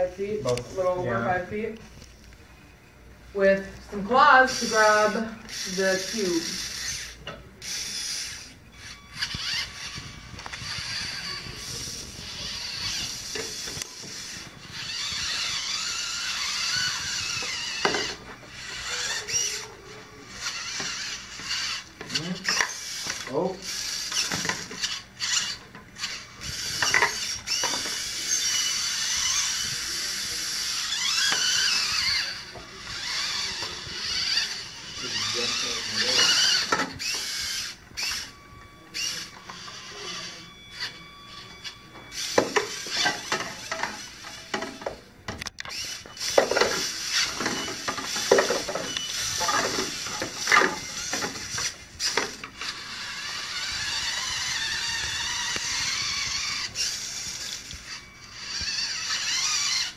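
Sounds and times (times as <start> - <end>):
small electric motors whining: 0.0 - 59.9.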